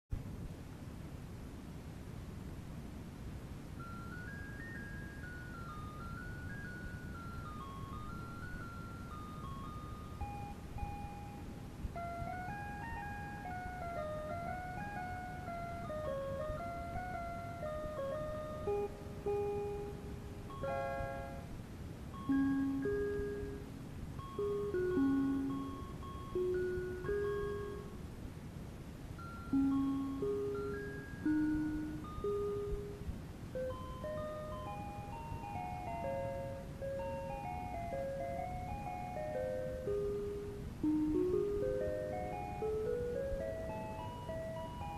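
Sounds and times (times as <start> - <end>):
cassette background noise: 0.1 - 44.9
electronic keyboard melody: 3.7 - 44.9.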